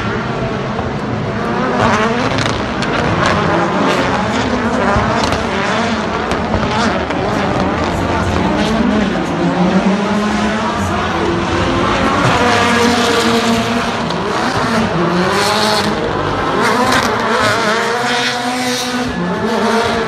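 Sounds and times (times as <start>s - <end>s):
race car engines revving: 0.0s - 20.0s.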